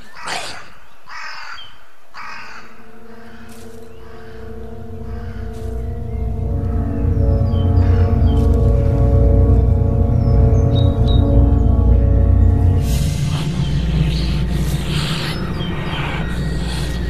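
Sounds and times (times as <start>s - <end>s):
bird cawing harshly: 0.0s - 8.6s
film score drone: 2.1s - 17.0s.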